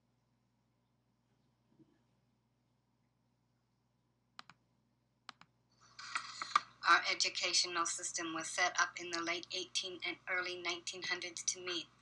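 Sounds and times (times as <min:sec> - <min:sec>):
computer mouse clicks: 0:04.4 - 0:04.6, 0:05.3 - 0:06.7
woman speaking: 0:06.0 - 0:12.0.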